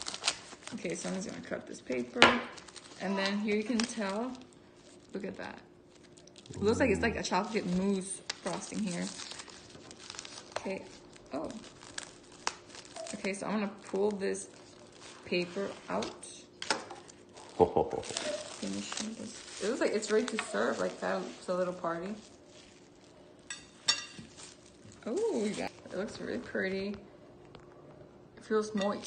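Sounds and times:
paper crinkling: 0.0s - 2.0s, 2.6s - 5.2s, 7.8s - 16.2s, 17.0s - 23.2s, 24.2s - 26.5s.

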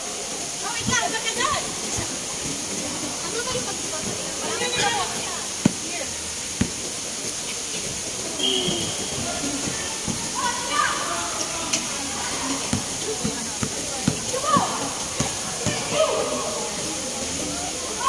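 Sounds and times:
steady background hiss: 0.0s - 18.0s
basketball bouncing: 5.6s - 5.9s, 6.6s - 7.0s, 12.6s - 16.0s
players calling out: 8.2s - 18.0s.

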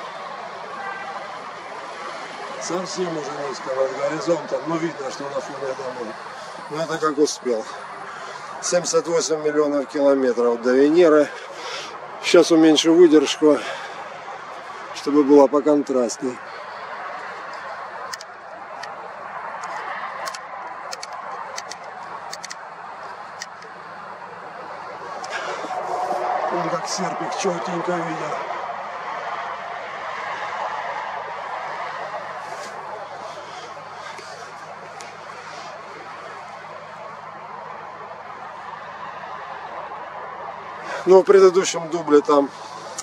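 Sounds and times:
distant road traffic hum: 0.0s - 43.0s.

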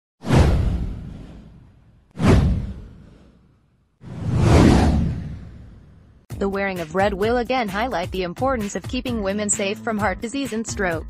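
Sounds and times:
deep boom: 0.2s - 3.2s, 4.1s - 6.2s.

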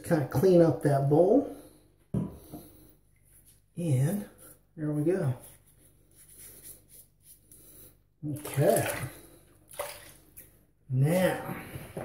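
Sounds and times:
shaving brush swishing in lather: 5.3s - 7.6s.

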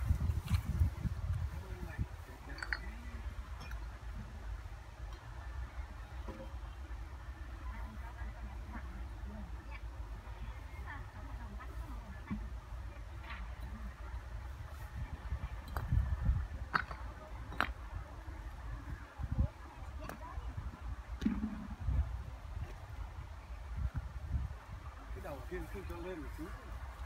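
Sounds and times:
faint distant voices: 0.7s - 27.0s.

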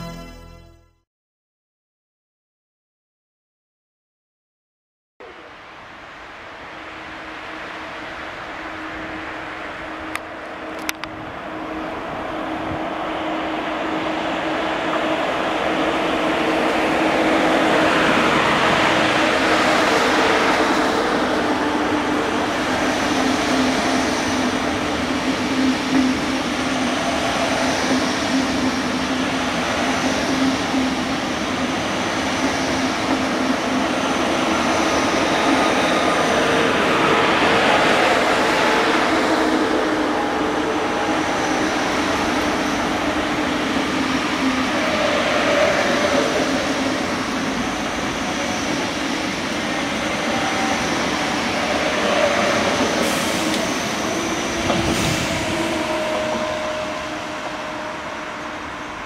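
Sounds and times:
high-speed train passing: 5.2s - 59.0s.

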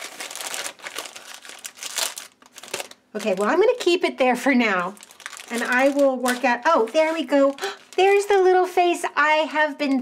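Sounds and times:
plastic bag crinkling: 0.0s - 8.7s.

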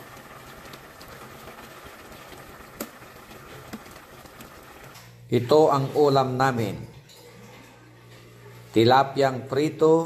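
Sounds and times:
soup simmering and bubbling: 0.0s - 5.2s.

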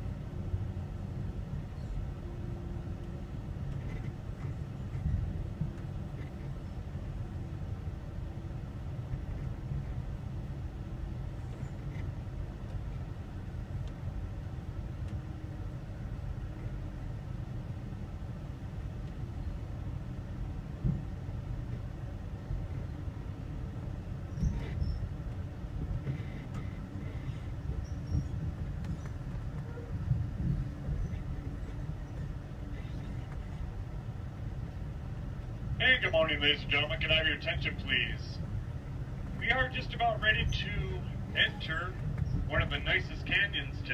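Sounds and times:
train car rumbling on rails: 0.0s - 43.9s.

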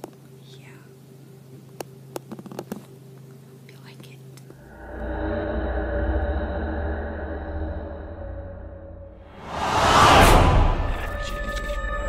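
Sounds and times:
steady low hum: 4.5s - 12.0s.

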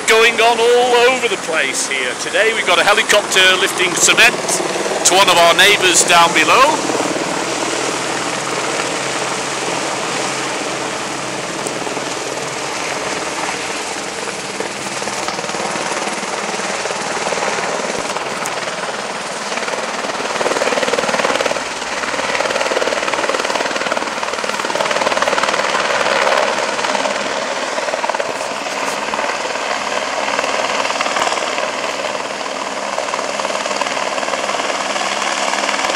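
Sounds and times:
helicopter rotor and engine: 0.0s - 35.9s.

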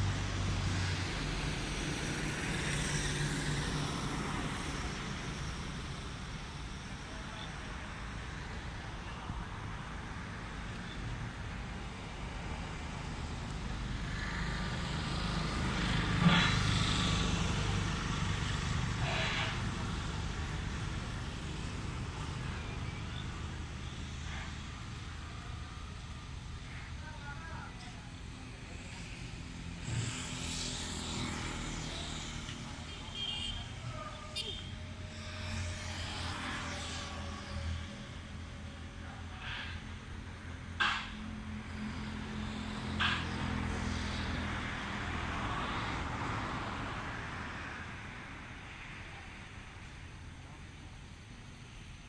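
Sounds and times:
street traffic passing: 0.0s - 52.0s.

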